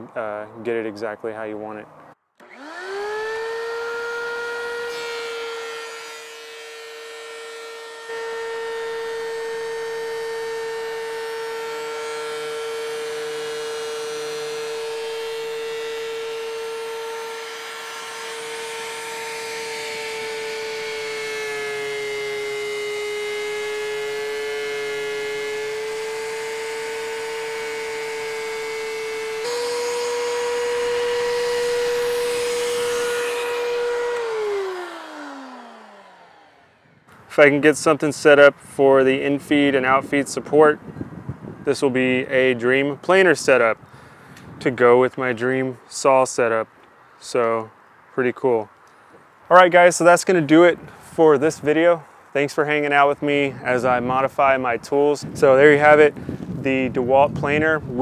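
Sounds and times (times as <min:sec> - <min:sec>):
thickness planer whining: 0:02.0 - 0:47.8, 0:48.7 - 0:58.0
planer motor winding down: 0:02.4 - 0:38.3.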